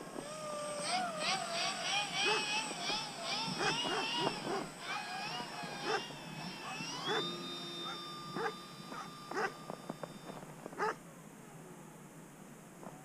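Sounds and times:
model plane electric motor whine: 0.0s - 11.0s
dogs barking: 2.1s - 2.6s, 3.3s - 9.6s, 10.8s - 11.0s.

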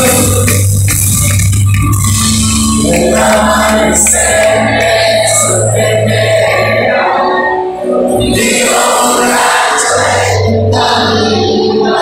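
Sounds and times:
person singing: 0.0s - 1.2s, 2.0s - 12.0s
live rock band playing loudly: 0.0s - 5.8s.

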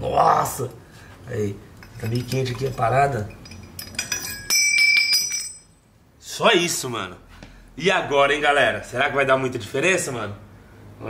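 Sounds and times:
metal bolt clattering on tile: 1.8s - 5.7s.

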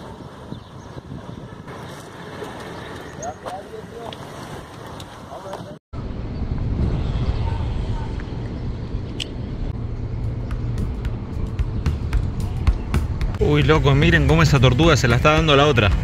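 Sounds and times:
wind rumble: 0.0s - 3.2s, 3.8s - 16.0s
road traffic: 0.0s - 16.0s.

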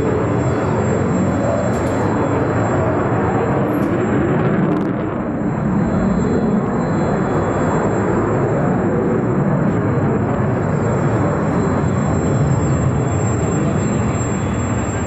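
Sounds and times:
fighter jet engine roar: 0.0s - 15.0s.

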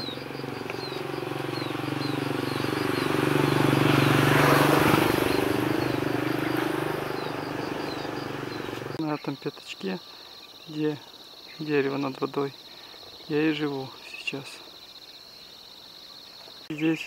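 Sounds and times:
motor vehicle passing: 0.0s - 9.0s
high falling chirp: 0.0s - 9.4s.

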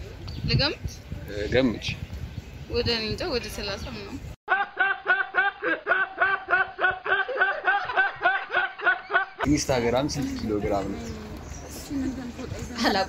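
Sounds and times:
person giggling: 4.5s - 9.5s.

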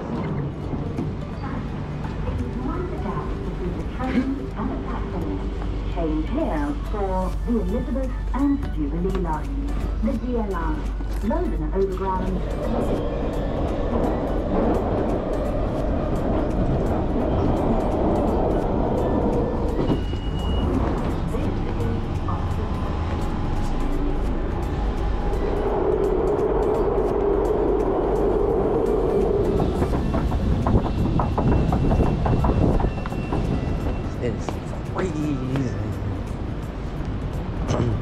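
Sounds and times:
train rumble inside carriage: 0.0s - 38.0s.

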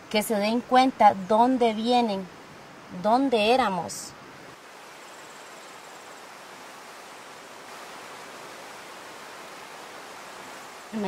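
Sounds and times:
river rushing: 4.2s - 11.0s.

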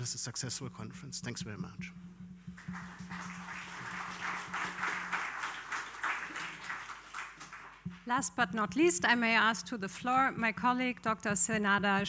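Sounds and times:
audience applauding: 2.5s - 7.9s.

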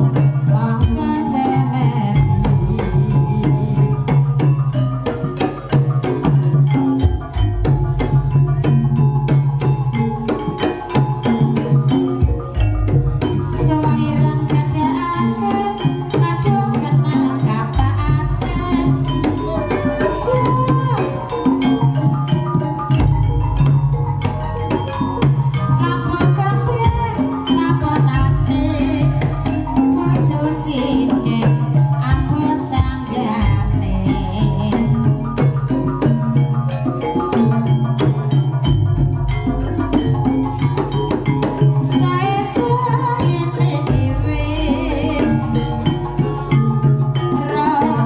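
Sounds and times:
gamelan ensemble music: 0.0s - 48.0s
hand drums beating rhythm: 0.0s - 48.0s
struck tuned metal percussion: 0.0s - 48.0s.

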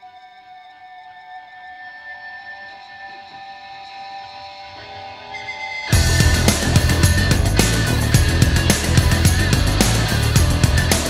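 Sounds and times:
electric guitar ringing notes: 0.0s - 11.0s.

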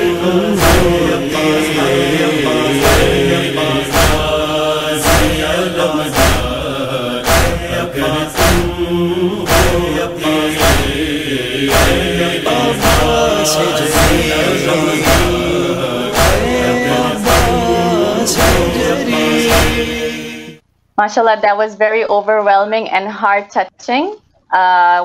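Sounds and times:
man chanting a lament: 0.0s - 20.3s
steady deep beat: 0.0s - 20.3s.

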